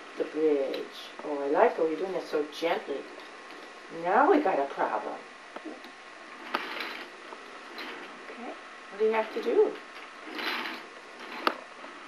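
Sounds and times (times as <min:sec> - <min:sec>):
wooden toy train rattling: 0:07.7 - 0:08.2, 0:09.0 - 0:11.6.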